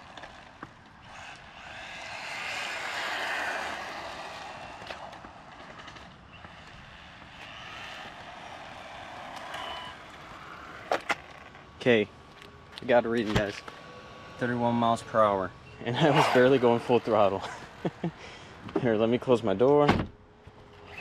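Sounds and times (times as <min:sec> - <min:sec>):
toy car motor and tyres rushing: 0:00.0 - 0:11.8, 0:13.1 - 0:18.7, 0:20.5 - 0:21.0.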